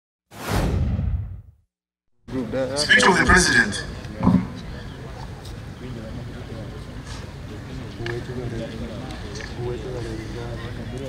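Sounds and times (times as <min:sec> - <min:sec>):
whoosh: 0:00.3 - 0:01.6.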